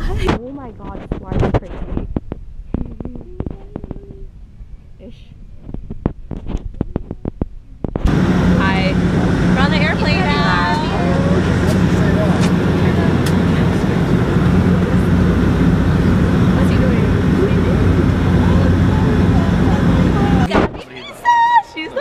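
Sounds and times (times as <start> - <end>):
person's voice: 0.0 - 1.9, 8.4 - 15.4, 16.4 - 22.0
airliner cabin drone: 8.0 - 20.8.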